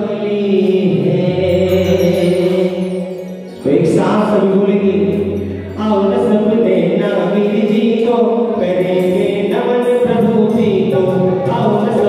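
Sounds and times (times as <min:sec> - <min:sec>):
electronic keyboard: 0:00.0 - 0:12.0
man singing into a microphone: 0:00.0 - 0:12.0.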